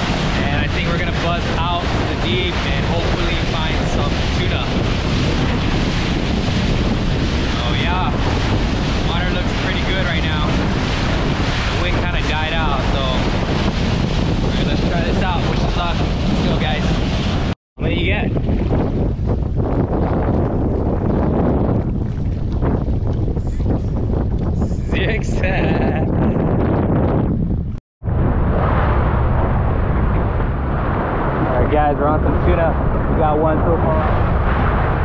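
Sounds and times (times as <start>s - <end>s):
rushing boat wake: 0.0s - 26.7s
choppy water: 0.0s - 35.0s
wind on microphone: 0.0s - 35.0s.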